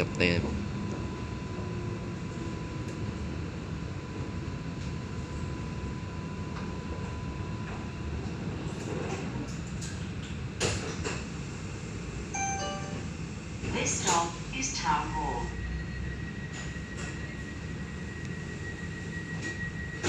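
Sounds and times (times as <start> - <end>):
tram low rumble: 0.0 - 20.0
faint steady whine: 12.2 - 20.0.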